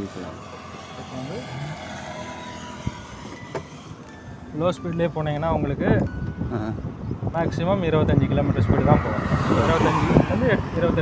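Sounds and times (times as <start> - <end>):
wind and road rushing: 0.0 - 11.0.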